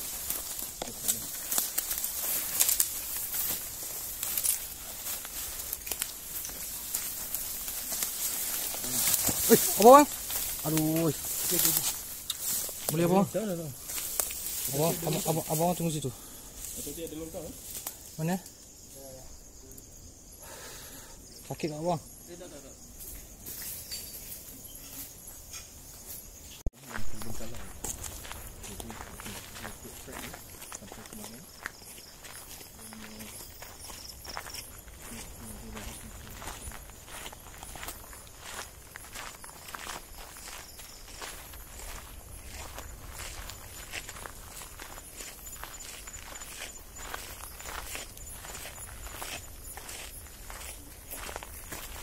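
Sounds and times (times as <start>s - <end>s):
footsteps through tall grass: 0.0s - 18.3s, 26.0s - 52.0s
high insect tone: 0.0s - 52.0s.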